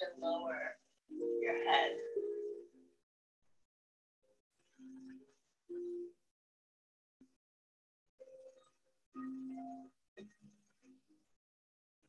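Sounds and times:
woman's voice: 0.0s - 0.7s, 1.4s - 2.1s.

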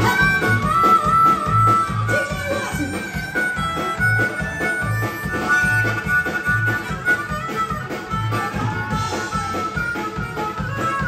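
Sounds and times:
bass guitar: 0.0s - 11.0s
drum kit beat: 0.0s - 11.0s
harmonica solo: 0.0s - 11.0s.

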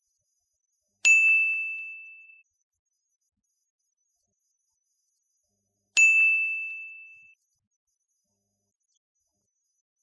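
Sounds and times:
bright ding: 1.1s - 2.3s, 6.0s - 7.3s.

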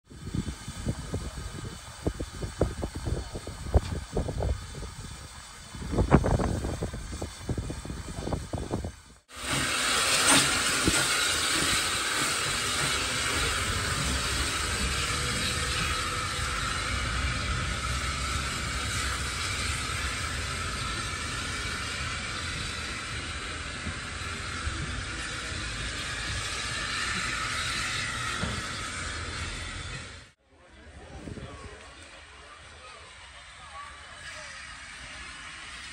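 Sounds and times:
steam locomotive hissing steam: 0.0s - 30.4s, 31.0s - 35.9s.

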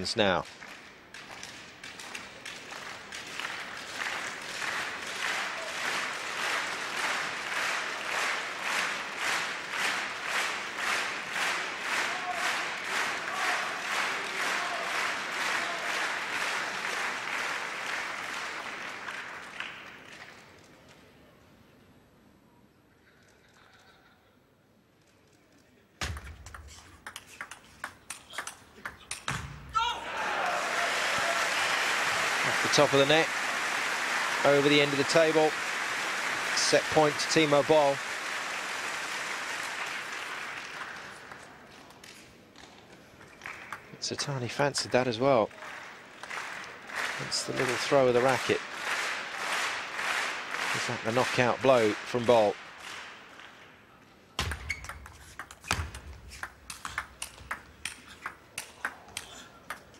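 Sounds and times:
crowd clapping in unison: 0.0s - 20.8s, 30.3s - 53.7s, 55.0s - 59.9s
table tennis ball clicks: 26.0s - 29.3s, 54.4s - 59.9s
crowd noise: 28.0s - 42.0s, 42.8s - 54.5s.

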